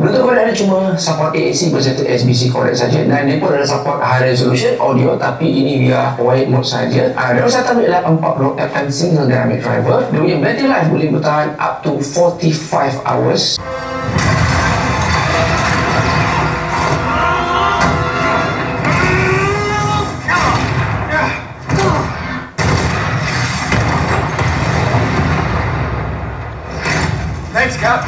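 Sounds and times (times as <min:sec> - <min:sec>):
film dialogue: 0:00.0 - 0:28.0
soundtrack hits: 0:13.6 - 0:27.8
action film score with bass: 0:13.6 - 0:28.0.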